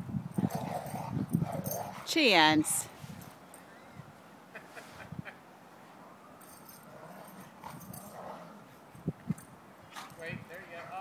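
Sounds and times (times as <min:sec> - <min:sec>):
dogs play-fighting in snow: 0:00.4 - 0:03.9, 0:06.0 - 0:10.3.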